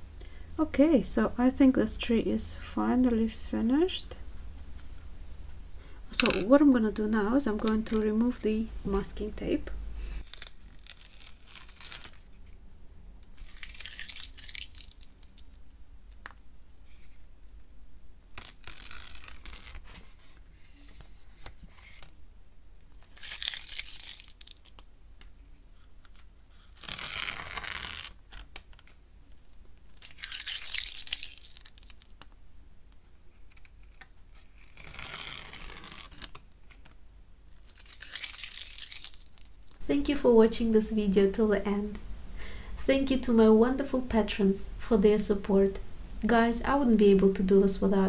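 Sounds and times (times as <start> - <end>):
masking tape being peeled off: 10.2 - 12.3, 13.3 - 16.4, 18.3 - 20.4, 22.8 - 24.9, 26.0 - 32.4, 33.4 - 39.8.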